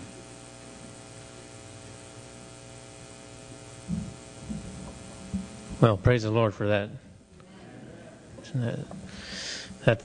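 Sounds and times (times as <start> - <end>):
electrical mains hum: 0.0 - 10.0
soft low thumps: 3.8 - 5.9
man speaking: 5.8 - 7.0, 8.0 - 9.0, 9.8 - 10.0.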